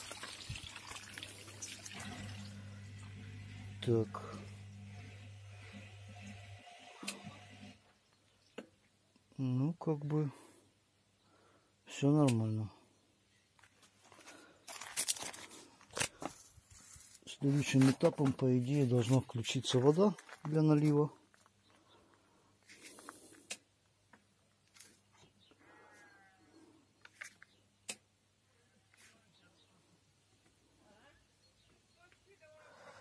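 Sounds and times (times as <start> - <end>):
dishwasher drain pump humming: 0.0 - 7.8
water pouring from hose: 0.0 - 7.8
rustling and scraping: 13.6 - 21.6, 22.6 - 23.6, 24.6 - 25.4, 27.0 - 27.6.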